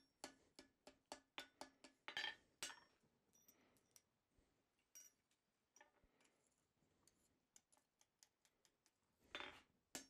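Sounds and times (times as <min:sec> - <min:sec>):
faint metal clinks: 0:02.7 - 0:04.2, 0:04.8 - 0:06.3.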